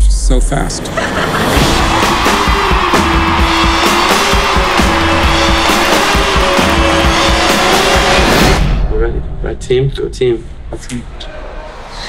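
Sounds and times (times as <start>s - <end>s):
loud rock music: 1.4s - 8.8s.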